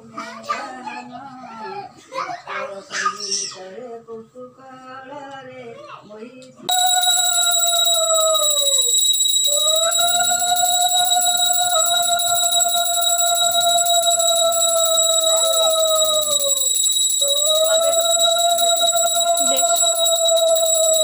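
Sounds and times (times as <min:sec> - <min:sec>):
metal hand bell ringing: 0:06.7 - 0:21.0.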